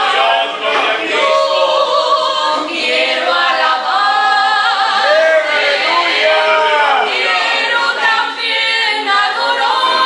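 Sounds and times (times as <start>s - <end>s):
two women singing a duet: 0.8s - 5.2s, 7.2s - 10.0s.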